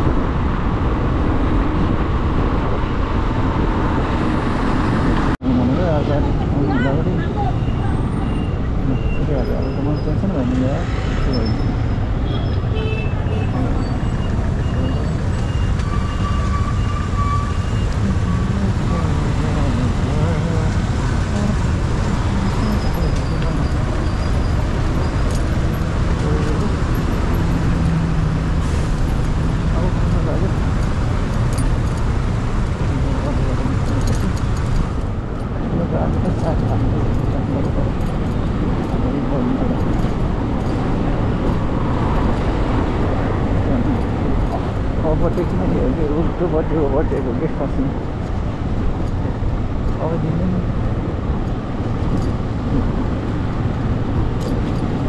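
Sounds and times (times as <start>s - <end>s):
traffic: 0.0s - 55.0s.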